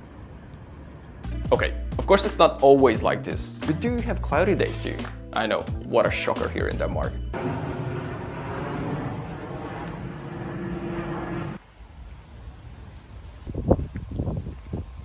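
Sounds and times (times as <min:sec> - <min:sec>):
vehicle rumble: 0:07.3 - 0:13.4
faint hum: 0:07.4 - 0:13.3.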